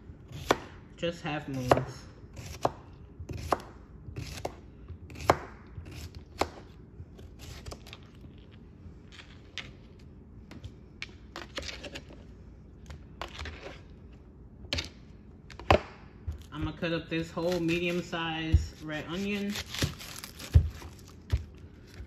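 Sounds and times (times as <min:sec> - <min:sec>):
knife chopping on cutting board: 0:00.3 - 0:00.8, 0:01.6 - 0:06.7.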